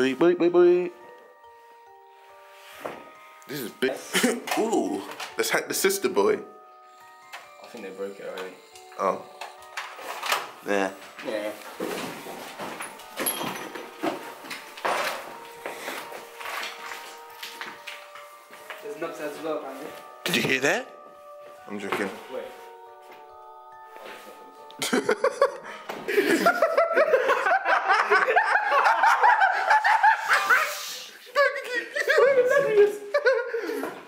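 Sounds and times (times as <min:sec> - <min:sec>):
people laughing: 0:04.1 - 0:04.6, 0:24.8 - 0:34.0.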